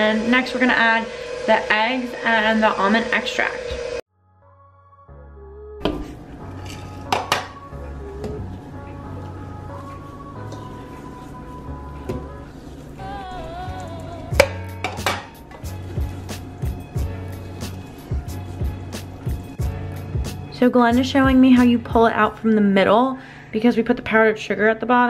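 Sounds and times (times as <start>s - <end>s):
background music: 4.2s - 23.6s
spatula scraping metal bowl: 6.0s - 7.6s.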